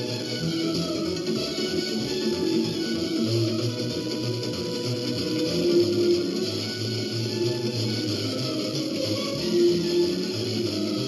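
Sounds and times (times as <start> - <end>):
guitar music on radio: 0.0 - 11.0
radio hiss: 0.0 - 11.0.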